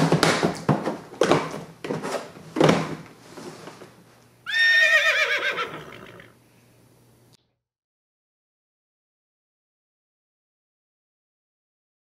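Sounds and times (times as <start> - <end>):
horse whinnying: 4.4 - 6.4.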